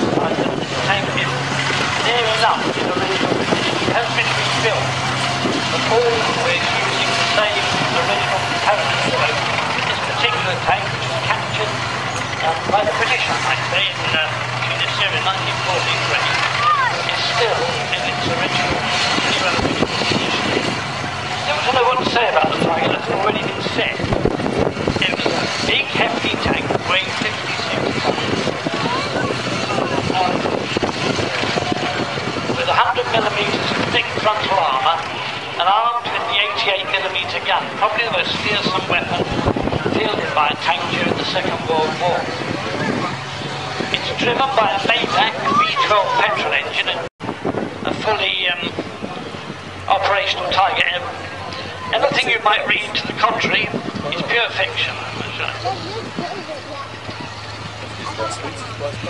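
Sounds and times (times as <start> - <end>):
crowd chatter: 0.0 - 59.0
tank engine running: 0.0 - 59.0
tank track noise: 0.0 - 59.0.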